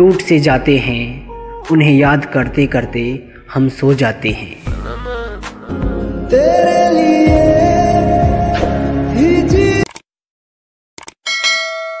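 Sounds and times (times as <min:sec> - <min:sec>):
quick clicks: 0:11.0 - 0:11.2
bell ding: 0:11.3 - 0:12.0.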